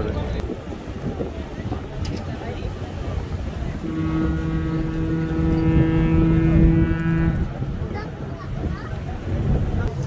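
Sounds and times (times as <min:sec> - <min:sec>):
ship's horn blast: 0:03.2 - 0:09.7.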